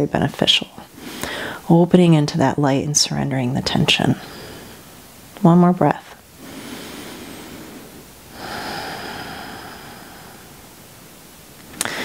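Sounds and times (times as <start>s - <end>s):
deep human breath: 1.0s - 1.6s, 6.4s - 10.6s.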